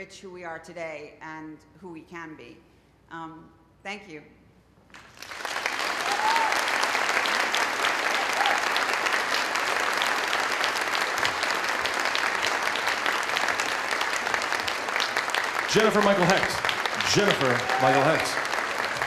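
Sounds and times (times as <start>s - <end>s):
audience applauding: 5.0s - 19.0s
call from the crowd: 6.0s - 9.5s, 15.6s - 19.0s.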